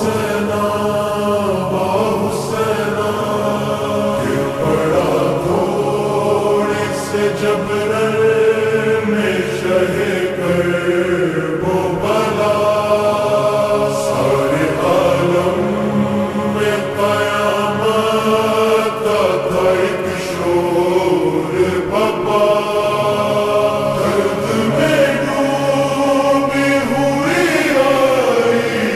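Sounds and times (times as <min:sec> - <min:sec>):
reverberant chant-like singing: 0:00.0 - 0:28.9.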